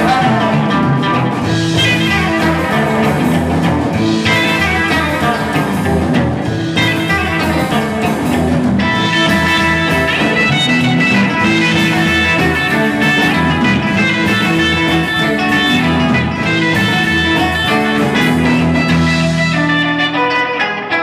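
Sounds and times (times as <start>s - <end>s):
upright double bass: 0.0s - 19.8s
drum kit: 0.0s - 21.0s
electric guitars: 0.0s - 21.0s.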